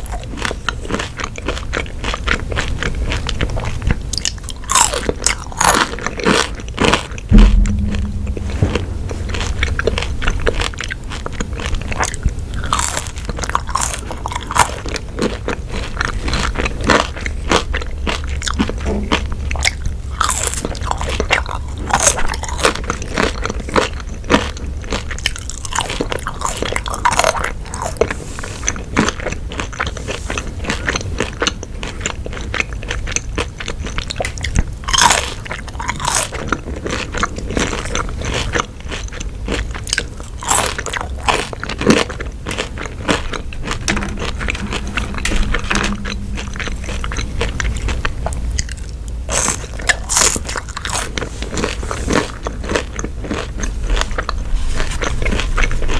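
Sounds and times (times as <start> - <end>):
crunching and wet chewing: 0.0 - 7.4, 10.6 - 55.9
loud low thump: 7.3 - 10.7, 43.9 - 48.4.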